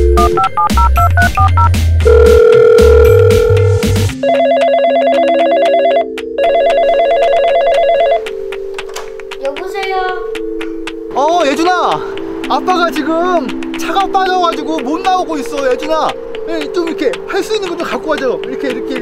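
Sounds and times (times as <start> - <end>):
music with heavy bass beat: 0.0 - 4.2
touch-tone keypad beeps: 0.0 - 8.2
steady phone tone: 0.0 - 8.3
toy telephone ringing: 4.2 - 8.2
person speaking: 11.1 - 19.0.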